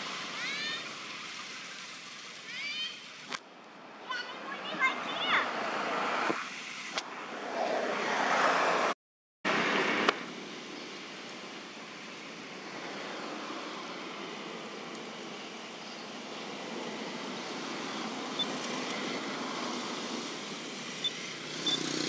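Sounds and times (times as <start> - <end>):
outdoor background noise: 0.0 - 22.0.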